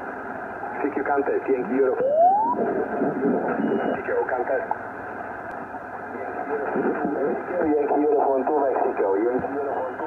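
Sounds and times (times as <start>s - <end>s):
radio voice through static: 0.7s - 4.7s, 6.1s - 10.0s.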